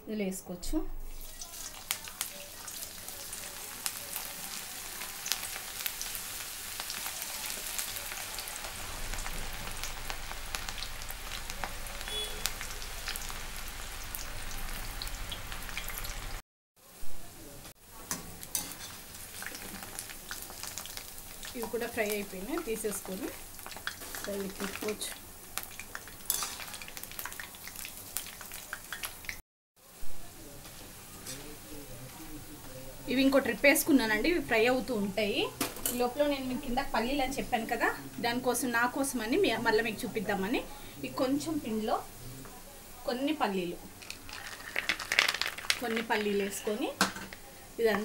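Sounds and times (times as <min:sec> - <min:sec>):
batter deep-frying in hot oil: 0:01.0 - 0:48.0.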